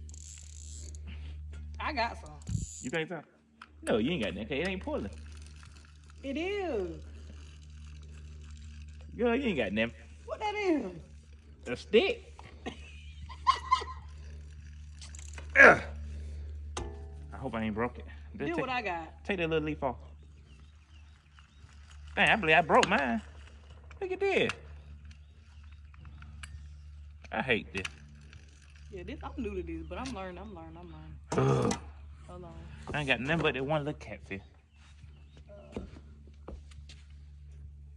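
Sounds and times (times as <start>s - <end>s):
fishing reel cranking: 0.0s - 3.0s, 3.6s - 19.5s, 20.2s - 30.9s
steady low hum: 0.0s - 37.9s.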